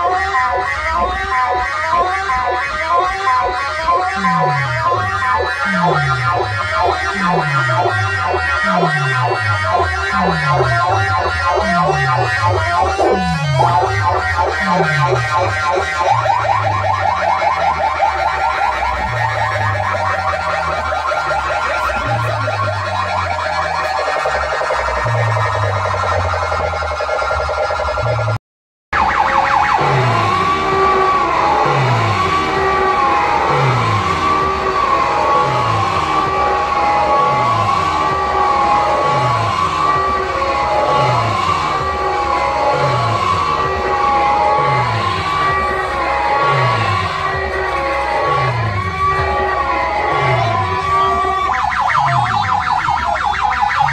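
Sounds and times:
falling bass sweeps: 0.0s - 28.4s, 29.0s - 53.9s
loud dance music with heavy bass: 0.0s - 53.9s
siren-like wail: 0.0s - 53.9s.

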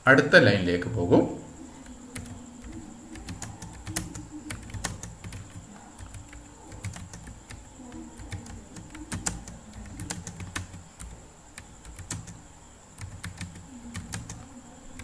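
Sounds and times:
faint high-pitched whine: 0.0s - 15.0s
computer keyboard typing: 1.8s - 15.0s.

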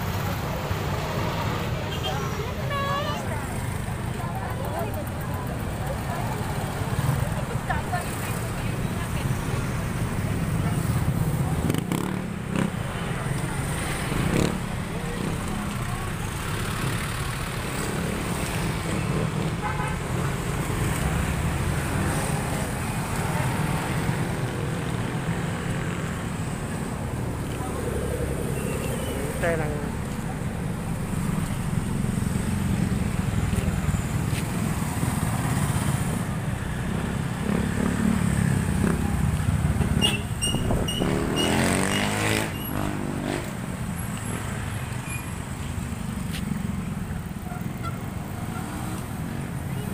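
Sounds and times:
cars and motorcycles passing: 0.0s - 49.9s
people talking: 0.2s - 9.9s, 29.0s - 30.6s.

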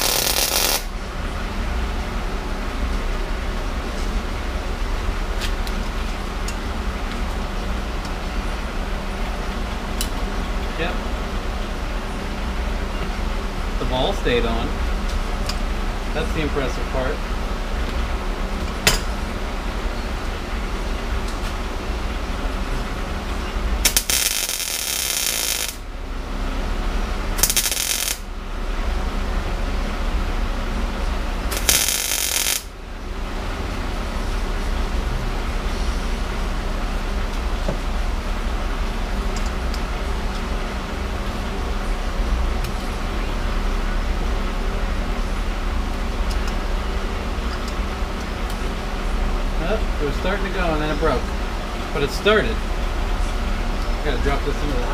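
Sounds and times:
welding arc crackling: 0.0s - 0.9s, 23.8s - 25.9s, 27.3s - 28.3s, 31.4s - 32.8s
steady low hum: 0.0s - 54.9s.

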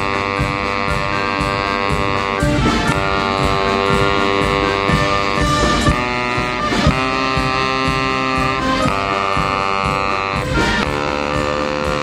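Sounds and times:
band accompaniment: 0.0s - 12.0s
baritone saxophone note: 0.0s - 12.0s.

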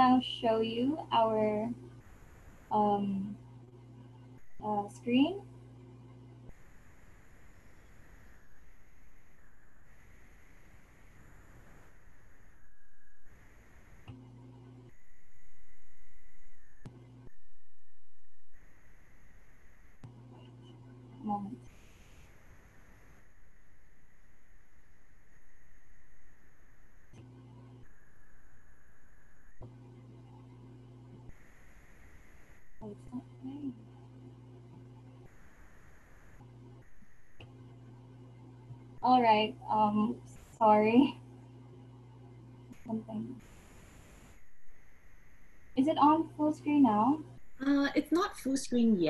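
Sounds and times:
low electrical hum: 0.0s - 49.0s.

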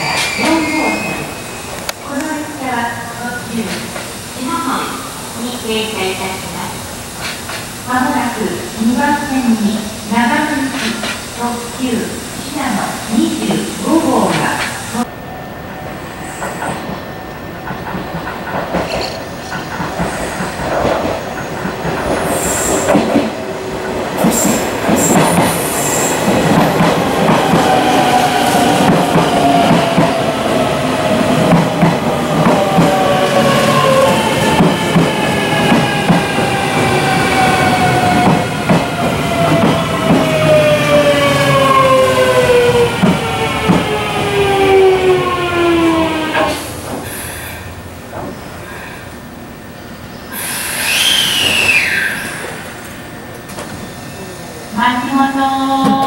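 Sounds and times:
train braking whine: 0.0s - 2.0s, 22.2s - 23.2s, 24.2s - 26.3s, 49.7s - 56.0s
train wheels clicking over rail joints: 17.6s - 30.2s.

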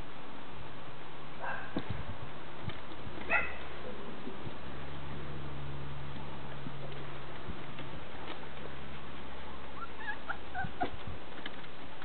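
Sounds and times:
puppy whimpering squeaks: 9.8s - 11.0s.

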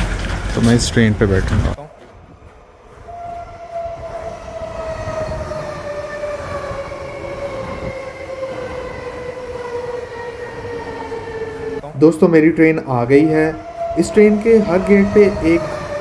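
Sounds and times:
wheels rumbling on rails: 0.0s - 16.0s.

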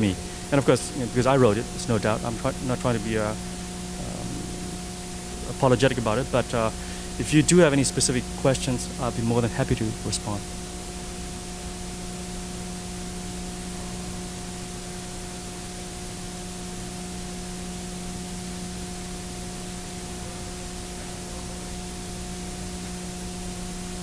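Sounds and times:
low even hum: 0.0s - 24.0s
steady hiss: 0.0s - 24.0s.

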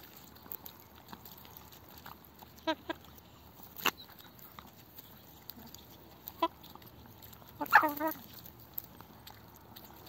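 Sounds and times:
hens pecking at tomato: 0.0s - 10.0s.

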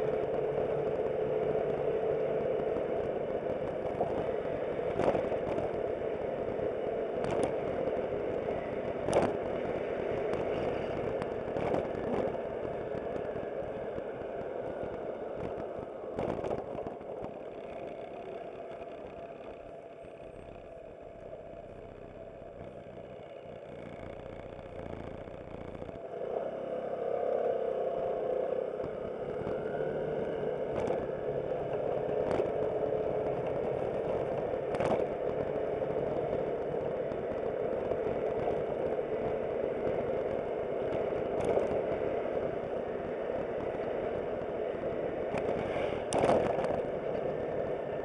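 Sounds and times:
road and wind noise: 0.0s - 48.0s
scooter engine: 0.0s - 48.0s.

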